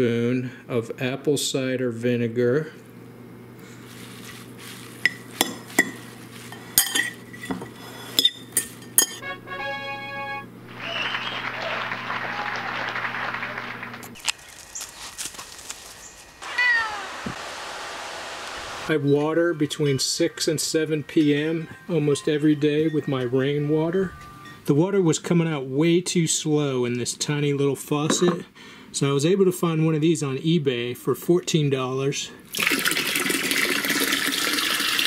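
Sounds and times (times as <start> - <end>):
steady low hum: 0.4 - 16.4
salad leaves rustling: 3.6 - 8.2, 14.2 - 18.9
cutlery clinking on ceramic bowl: 5.0 - 9.2.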